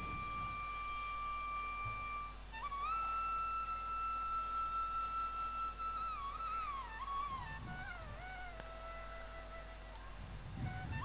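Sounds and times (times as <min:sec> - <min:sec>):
soft flute music: 0:00.0 - 0:11.0.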